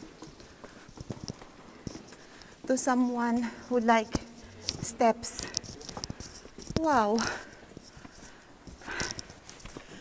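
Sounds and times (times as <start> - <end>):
footsteps on stone steps: 0.0 - 10.0.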